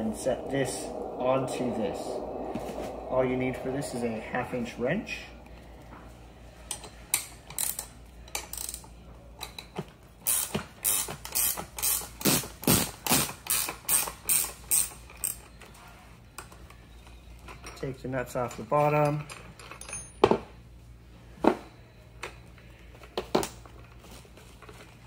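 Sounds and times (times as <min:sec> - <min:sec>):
wrench clicking: 0:06.7 - 0:12.4.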